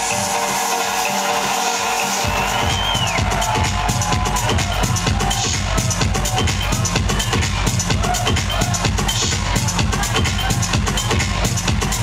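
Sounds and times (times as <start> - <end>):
loud electro house music: 0.0 - 12.0.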